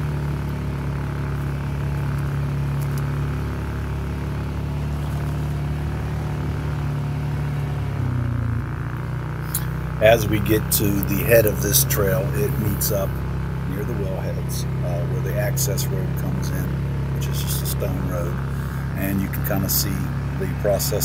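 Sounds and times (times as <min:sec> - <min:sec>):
atv engine running: 0:00.0 - 0:21.0.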